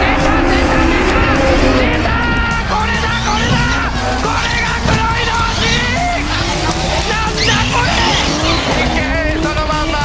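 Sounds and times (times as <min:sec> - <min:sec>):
background music: 0:00.0 - 0:10.0
car engine revving: 0:00.0 - 0:10.0
tyre squeal: 0:00.4 - 0:10.0.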